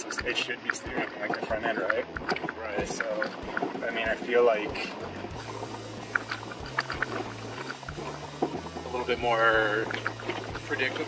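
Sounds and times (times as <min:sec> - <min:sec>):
low engine drone: 0:00.0 - 0:11.0.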